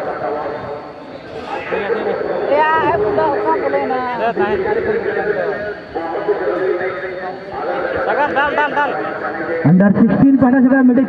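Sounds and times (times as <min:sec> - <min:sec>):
commentary: 0:00.0 - 0:11.0
men talking and calling out: 0:00.0 - 0:11.0.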